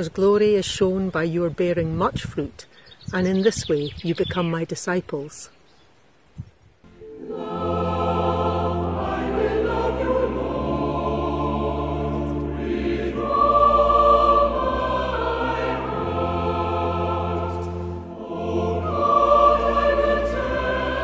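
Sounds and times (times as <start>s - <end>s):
choir singing slow worship song: 6.9s - 21.0s
held low accompaniment notes: 6.9s - 21.0s.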